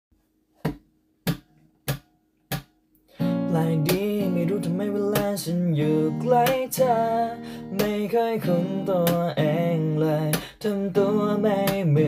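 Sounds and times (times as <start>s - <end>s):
acoustic guitar: 3.1s - 12.0s
finger snaps: 3.9s - 4.2s, 5.1s - 5.4s, 7.8s - 8.1s, 9.0s - 9.4s, 10.3s - 10.6s.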